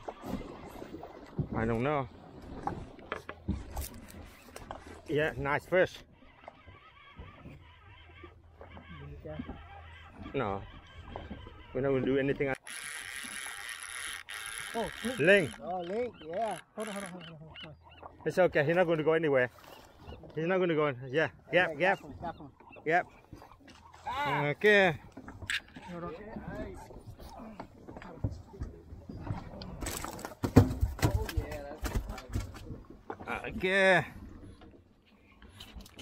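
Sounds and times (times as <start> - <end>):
fishing reel cranking: 12.6 - 15.7, 16.4 - 17.2
fish thumping onto boat: 29.8 - 32.6
knocks on boat: 30.3 - 32.6.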